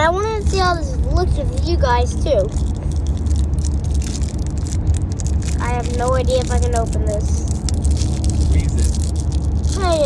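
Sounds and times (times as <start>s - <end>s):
low rumble inside car: 0.0s - 10.0s
plastic wrapper crinkling: 2.5s - 10.0s.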